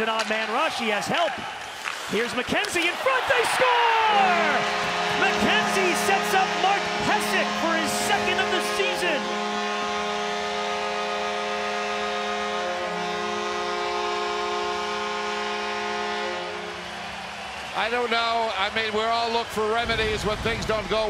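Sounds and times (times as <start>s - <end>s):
crowd cheering: 0.0s - 21.0s
arena goal horn: 2.6s - 18.8s.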